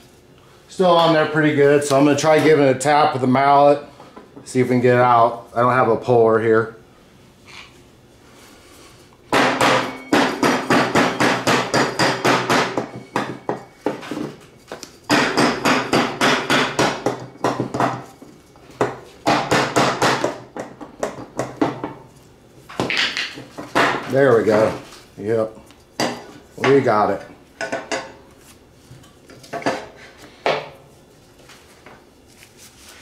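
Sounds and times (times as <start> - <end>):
mallet hammering on metal pulley: 9.3 - 14.0, 15.1 - 18.1, 18.8 - 22.0.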